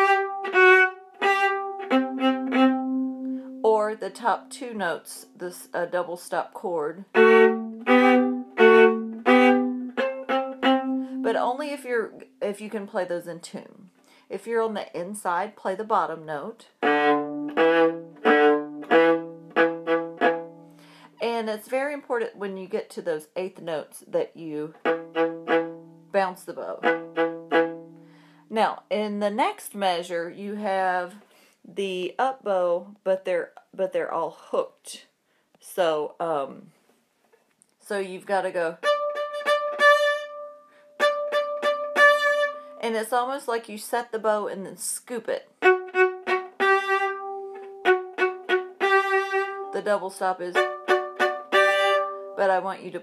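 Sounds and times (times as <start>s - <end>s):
viola bowing low note: 0.0s - 4.6s, 7.1s - 11.4s, 45.6s - 52.4s
viola bowed phrase: 0.0s - 12.4s, 16.3s - 20.6s, 24.7s - 28.1s, 38.7s - 42.8s, 45.6s - 53.0s.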